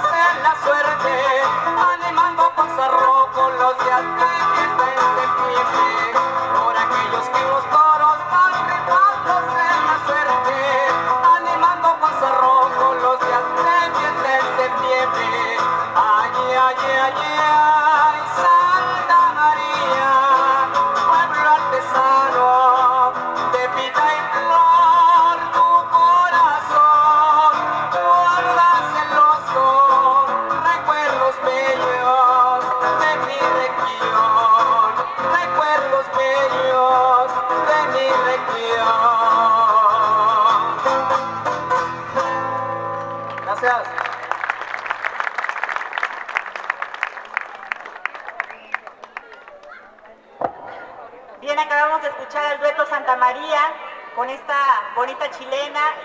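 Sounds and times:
men singing: 0:00.0 - 0:41.0
acoustic guitars strumming: 0:00.0 - 0:43.7.

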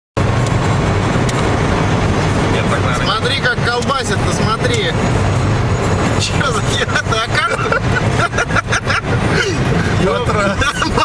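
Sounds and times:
car road and engine noise: 0:00.2 - 0:11.0.

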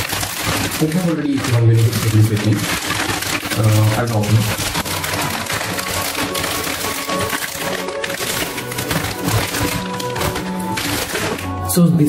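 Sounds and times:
plastic bag crinkling: 0:00.0 - 0:12.0
background music: 0:03.5 - 0:12.0.

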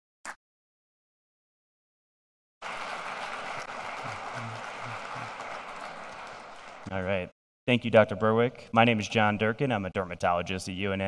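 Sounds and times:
audience applauding: 0:02.6 - 0:07.0.

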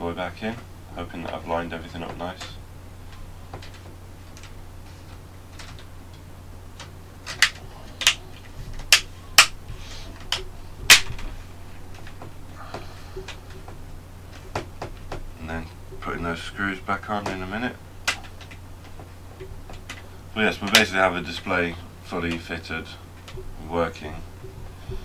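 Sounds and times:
low steady hum: 0:00.0 - 0:25.0
plastic clips snapping into place: 0:10.2 - 0:11.3.

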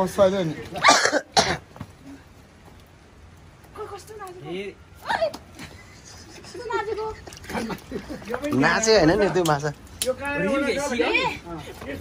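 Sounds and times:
person coughing: 0:00.8 - 0:01.6.

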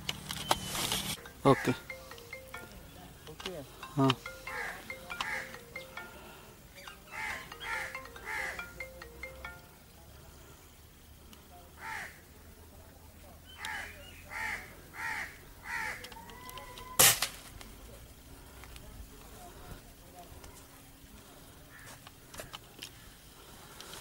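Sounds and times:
crows cawing: 0:01.4 - 0:01.9, 0:04.4 - 0:05.6, 0:07.1 - 0:08.6, 0:11.8 - 0:12.3, 0:13.6 - 0:17.0, 0:21.7 - 0:23.2.

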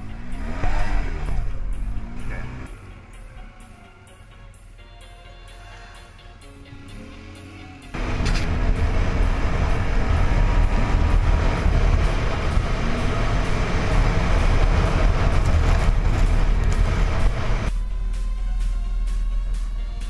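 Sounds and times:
atv engine running: 0:06.6 - 0:17.7.

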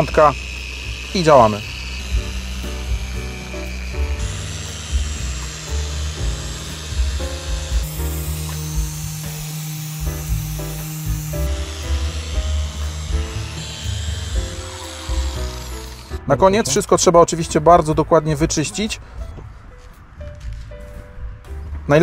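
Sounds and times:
rising hiss: 0:00.0 - 0:16.2
background music with steady beat: 0:00.0 - 0:22.0.

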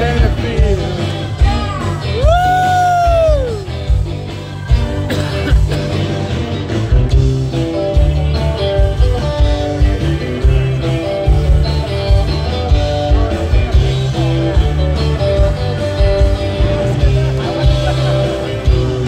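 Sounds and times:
bass guitar: 0:00.0 - 0:19.0
electric guitar lead: 0:00.0 - 0:19.0
steady drum beat: 0:00.0 - 0:19.0.

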